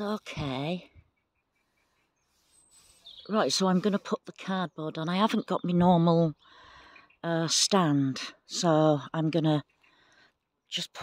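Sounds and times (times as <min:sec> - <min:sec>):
faint small bird chirps: 0:00.9 - 0:07.3.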